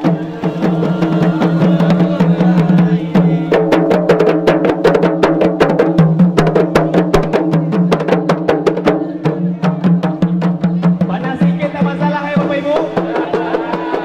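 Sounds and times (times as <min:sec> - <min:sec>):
frame drums beaten quickly: 0:00.0 - 0:14.0.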